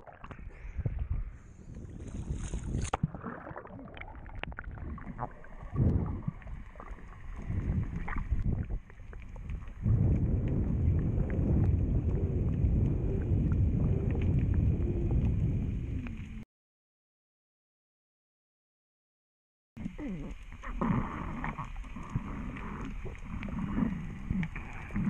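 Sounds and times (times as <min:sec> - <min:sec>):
muffled underwater rushing: 0:00.0 - 0:16.4, 0:19.8 - 0:25.0
water splashing: 0:02.0 - 0:14.4.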